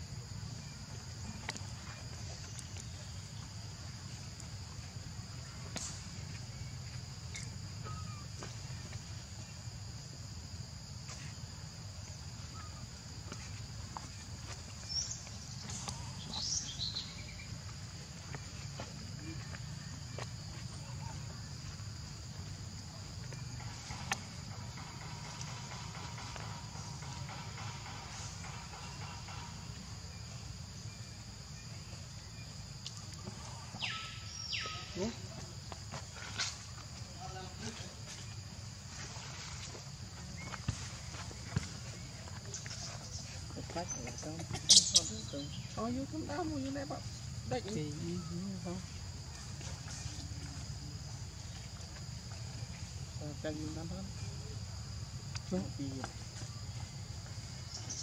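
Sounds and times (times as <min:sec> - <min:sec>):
high-pitched insect drone: 0:12.4 - 0:32.0.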